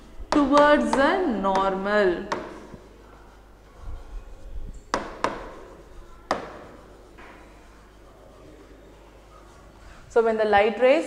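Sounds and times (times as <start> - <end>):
pen tapping on glass: 0.3 - 2.8, 4.8 - 5.6, 6.3 - 7.4.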